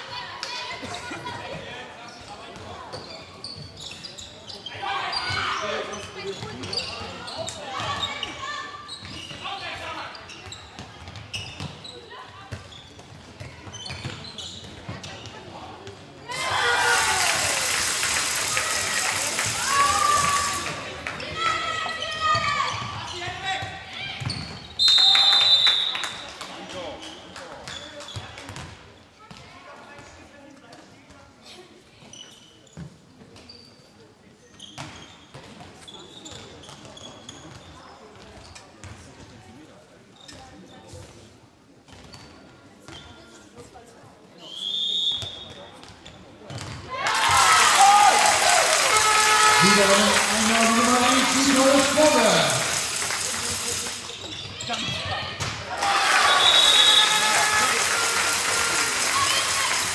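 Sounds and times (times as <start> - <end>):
ball bouncing on court floor: 12.5 - 16.0, 22.3 - 24.6, 27.6 - 29.5, 45.8 - 46.8, 54.3 - 55.6
crowd cheering and clapping: 16.4 - 21.2, 47.0 - 54.1, 55.7 - 59.9
referee's whistle: 24.7 - 26.3, 44.5 - 45.6, 56.2 - 57.5
players calling out: 47.0 - 59.9.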